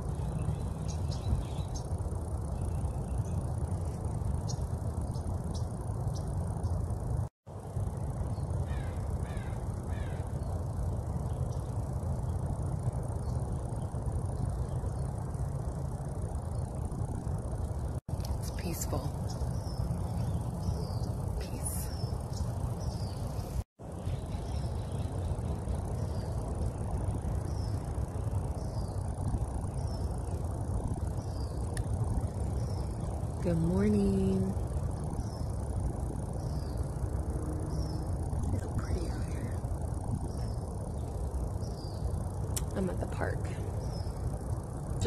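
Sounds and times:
small bird chirping: 0.0s - 2.0s, 18.2s - 26.5s
low outdoor rumble: 0.0s - 45.0s.

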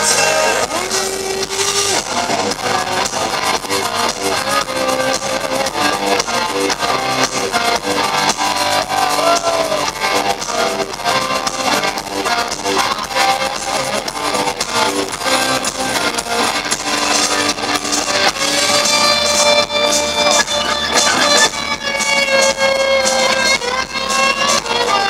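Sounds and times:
electric guitar lead: 0.0s - 25.0s
live rock band playing: 0.0s - 25.0s.

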